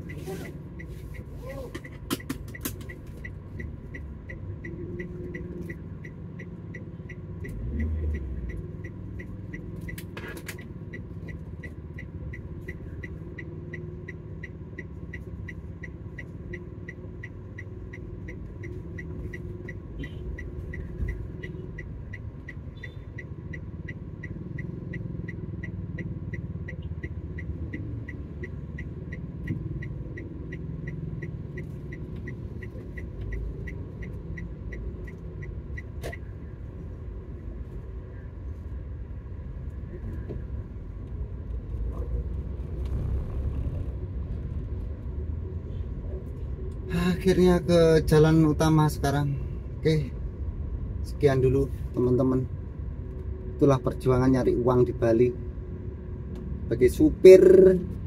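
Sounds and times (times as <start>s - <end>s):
engine and road rumble: 0.0s - 58.0s
light regular ticking: 0.0s - 58.0s.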